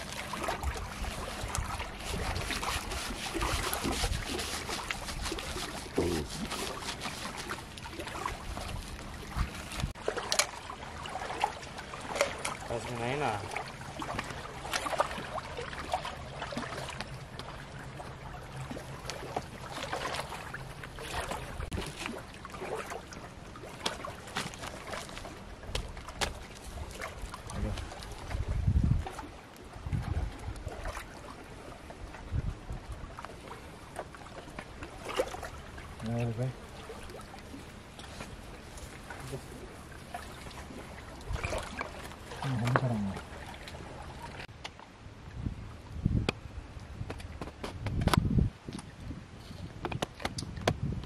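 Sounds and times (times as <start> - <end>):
small waves lapping on rocky shore: 0.0 - 45.0
wind buffeting microphone: 7.6 - 10.0, 25.6 - 33.2, 45.1 - 51.0.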